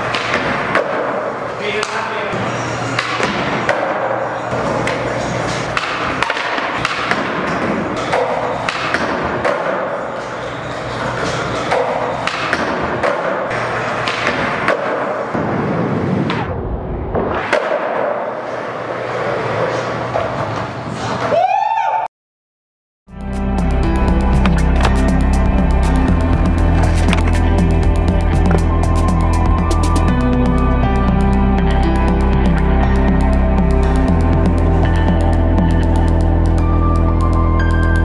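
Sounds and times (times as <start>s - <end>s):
background music: 23.1s - 38.0s.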